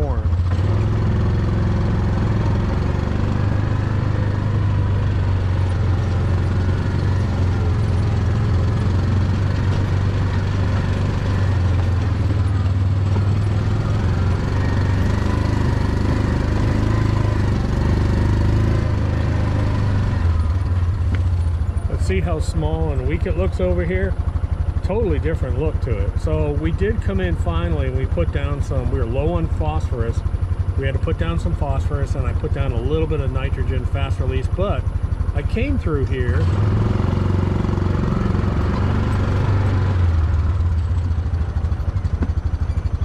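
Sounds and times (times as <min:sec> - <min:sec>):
small vehicle engine humming: 0:00.0 - 0:43.0.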